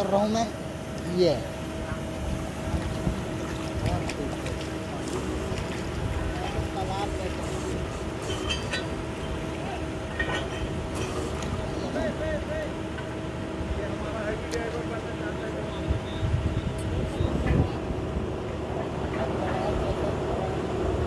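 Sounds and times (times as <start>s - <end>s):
drilling rig humming: 0.0s - 21.0s.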